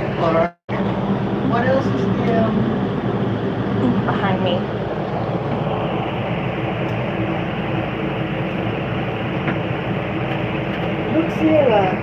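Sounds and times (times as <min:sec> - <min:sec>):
air-conditioning blower whir: 0:00.0 - 0:12.0
low hum: 0:00.0 - 0:12.0.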